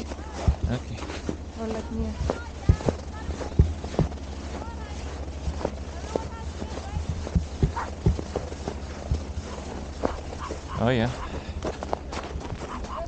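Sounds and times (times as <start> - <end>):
footsteps crunching in snow: 0.0 - 13.0
steady low rumble: 0.0 - 13.0.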